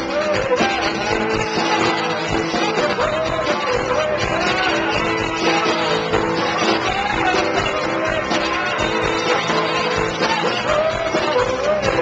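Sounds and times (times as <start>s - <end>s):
electric guitars strumming: 0.0s - 12.0s
pitch-bending guitar melody: 0.0s - 12.0s.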